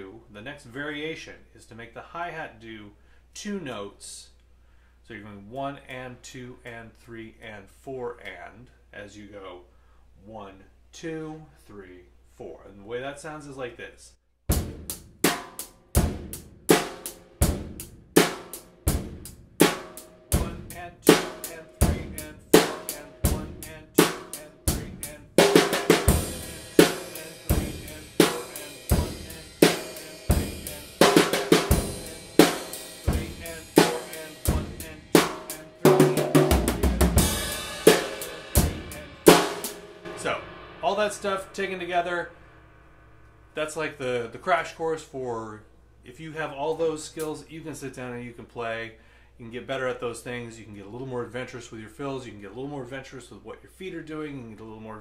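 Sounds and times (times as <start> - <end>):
drum kit playing rock beat: 14.5 - 42.8
drum fill: 14.5 - 44.1
ringing cymbal: 37.2 - 44.1.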